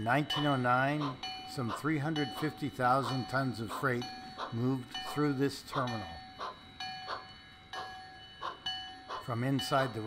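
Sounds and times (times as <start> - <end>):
faint train sound: 0.0 - 10.0
locomotive bell clanging: 0.0 - 10.0.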